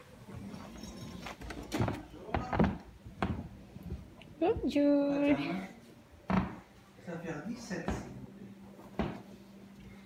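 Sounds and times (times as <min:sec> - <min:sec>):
footsteps of people walking: 0:00.2 - 0:04.8.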